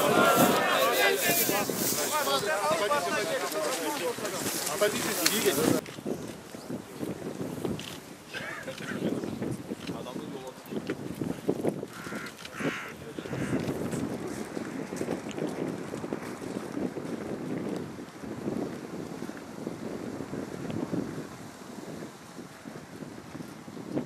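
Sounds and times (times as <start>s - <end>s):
wind rumbling on microphone: 0.0s - 24.0s
harsh crow-like calls: 11.9s - 13.6s.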